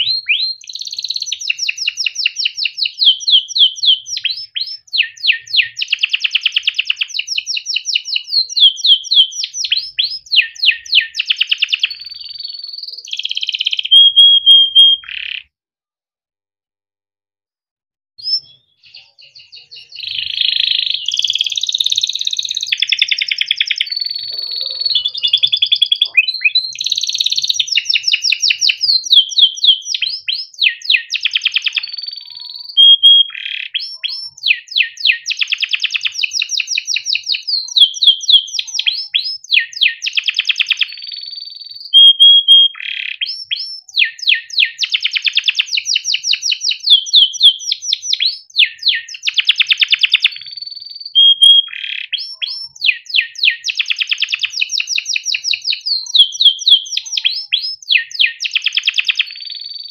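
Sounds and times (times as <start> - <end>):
canary singing trills: 0.0 - 15.5, 18.2 - 59.9.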